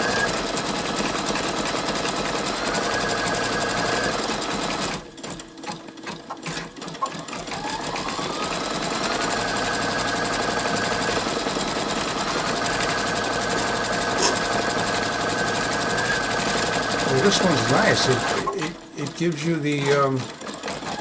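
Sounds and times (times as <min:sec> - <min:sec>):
embroidery machine stitching: 0:00.0 - 0:21.0
machine clicks: 0:17.1 - 0:21.0.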